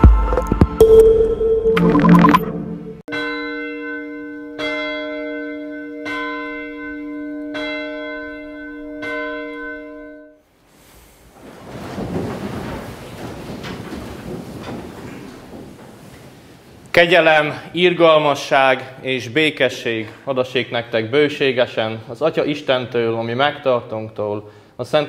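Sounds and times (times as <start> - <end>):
church bell tolling: 2.6 - 10.4
background hiss and rustle: 10.4 - 21.6.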